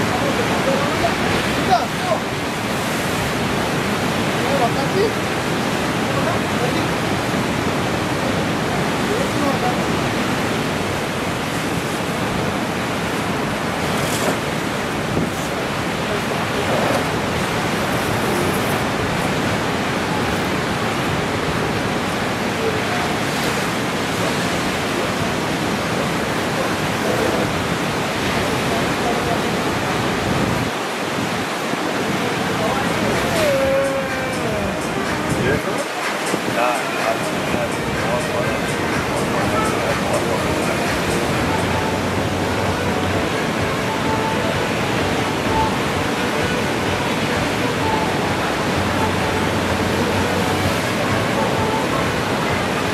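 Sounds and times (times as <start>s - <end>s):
ocean surf breaking: 0.0s - 52.9s.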